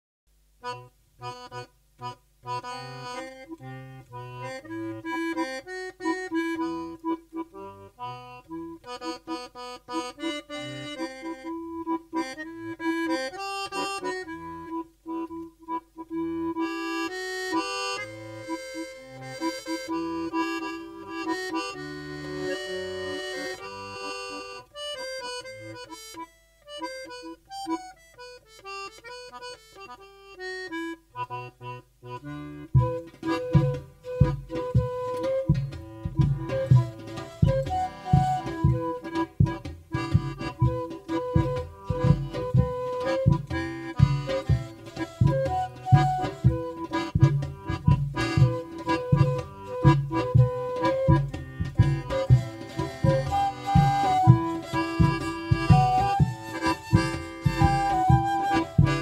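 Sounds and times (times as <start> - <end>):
accordion melody: 0.4 - 59.0.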